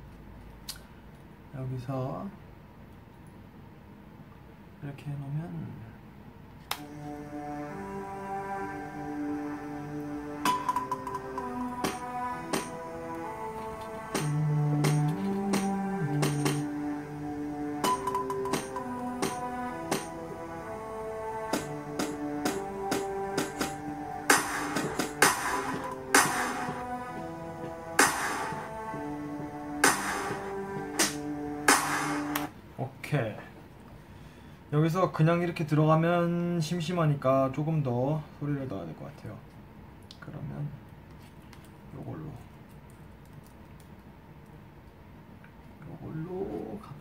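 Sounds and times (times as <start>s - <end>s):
looping electronic melody: 6.8s - 32.5s
low bass notes: 6.8s - 32.5s
sharp noisy drum hits: 11.8s - 12.8s, 14.2s - 16.7s, 17.8s - 20.2s, 21.6s - 26.7s, 28.0s - 28.6s, 31.0s - 32.4s.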